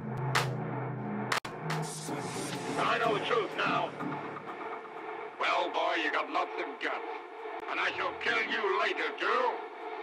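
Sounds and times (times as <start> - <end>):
steady hum: 1.8 - 10.0.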